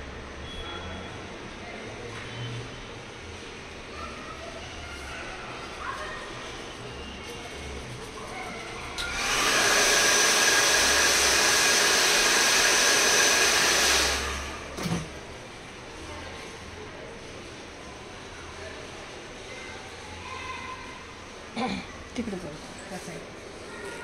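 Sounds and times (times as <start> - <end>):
hair dryer blowing with whine: 9.0 - 14.9.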